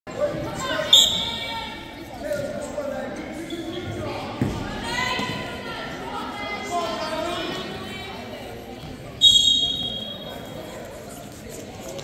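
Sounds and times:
referee's whistle: 0.9 - 1.5, 9.2 - 10.4.

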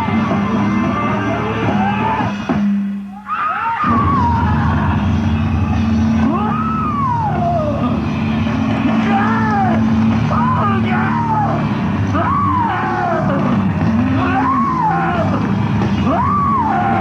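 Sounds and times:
live rock band: 0.0 - 17.0.

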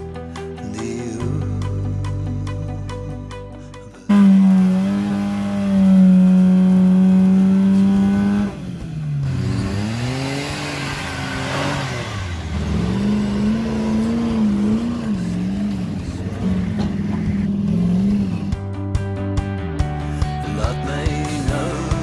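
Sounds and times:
off-road engine revving: 4.0 - 22.0.

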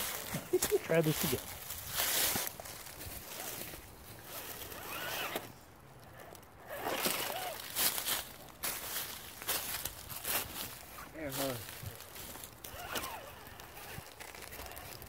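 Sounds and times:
leaves rustling: 0.0 - 15.0
rc car motor whirring: 4.2 - 7.6, 12.5 - 15.0.

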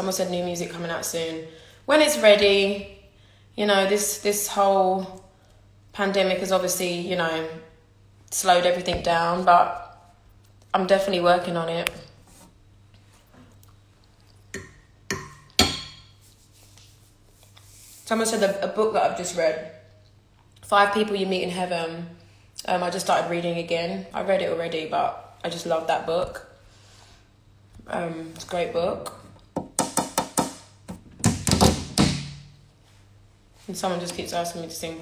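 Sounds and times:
sharp percussive hits ringing: 14.6 - 16.1.

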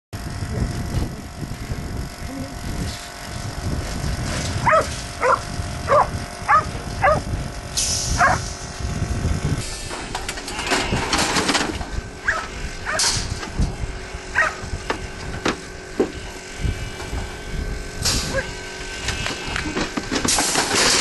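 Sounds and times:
dog barking: 4.6 - 7.2, 8.2 - 8.4, 12.2 - 13.0, 14.4 - 14.6, 18.3 - 18.6.

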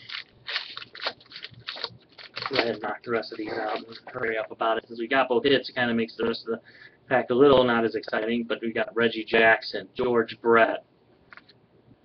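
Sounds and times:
cards rustling: 0.0 - 4.4.

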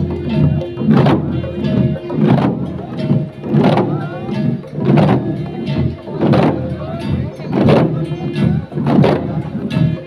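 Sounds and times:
drums beaten in marching rhythm: 0.0 - 10.0
voices calling: 0.0 - 10.0.

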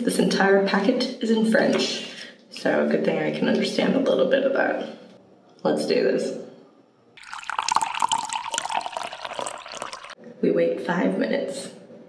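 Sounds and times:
liquid running and splashing: 7.2 - 10.2.

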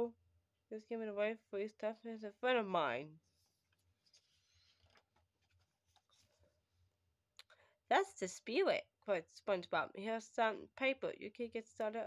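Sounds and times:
paper page rustling: 3.3 - 6.5.

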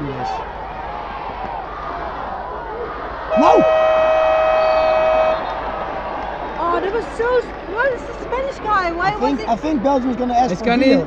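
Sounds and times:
loud horn held note: 3.3 - 5.6.

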